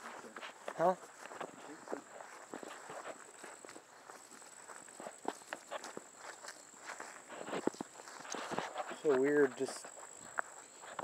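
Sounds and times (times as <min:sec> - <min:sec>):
footsteps on grass: 0:00.0 - 0:11.0.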